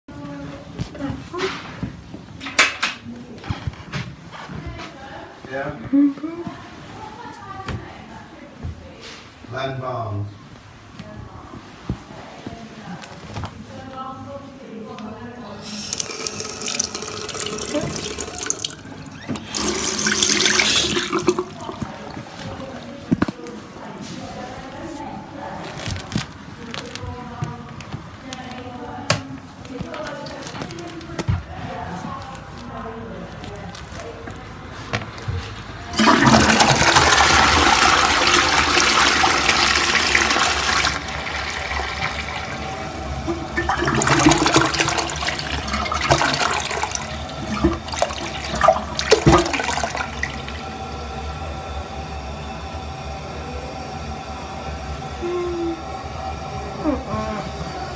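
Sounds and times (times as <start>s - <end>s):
toilet flushing: 15.5s - 23.1s, 35.8s - 57.9s
tap water running into basin: 15.6s - 23.2s, 35.9s - 51.0s.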